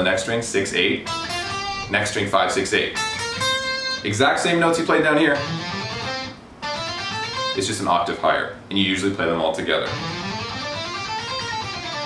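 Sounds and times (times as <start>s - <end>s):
electric guitar playing a scale: 1.0s - 2.2s, 2.8s - 8.1s, 9.8s - 12.0s.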